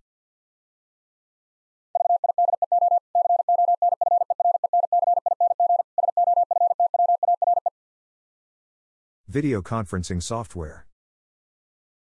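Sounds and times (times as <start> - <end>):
morse code beeps: 2.0 - 7.7.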